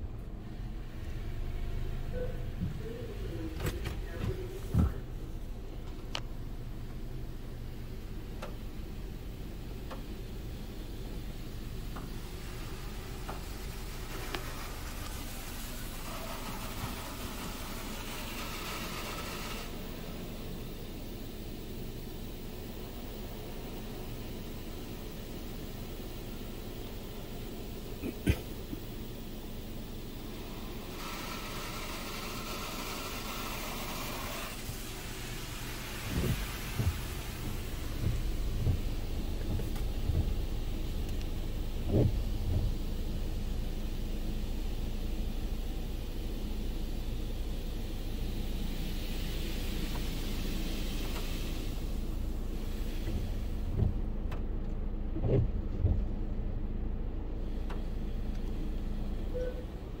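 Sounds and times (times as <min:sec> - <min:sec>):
air dryer blowing over car: 0:02.4 - 0:54.3
spray hissing: 0:11.6 - 0:29.2, 0:29.8 - 0:53.8
dull thumps: 0:36.0 - 0:43.2, 0:53.1 - 0:54.5.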